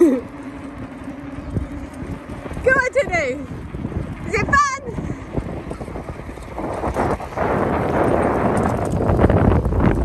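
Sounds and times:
bicycle tyres rolling on tarmac: 0.0s - 10.0s
wind buffeting microphone: 0.0s - 10.0s.

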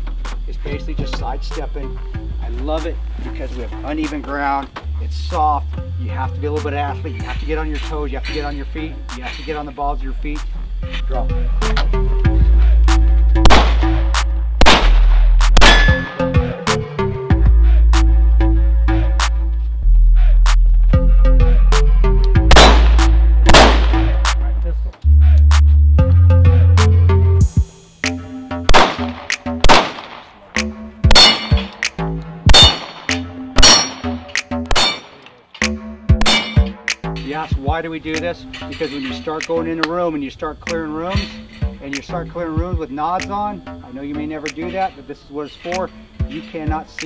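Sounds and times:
music track: 0.0s - 47.0s
steel targets clanging: 7.3s - 9.8s, 15.6s - 16.4s, 31.1s - 31.9s, 32.5s - 39.6s, 41.0s - 42.0s
pistol shots: 13.4s - 14.0s, 14.6s - 16.1s, 22.5s - 24.1s, 28.7s - 30.4s, 31.1s - 31.8s, 32.5s - 35.2s, 36.2s - 36.7s.

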